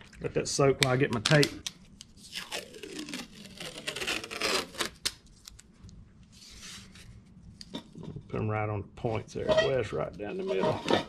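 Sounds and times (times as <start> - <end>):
tape ripping off roll: 2.2 - 5.6.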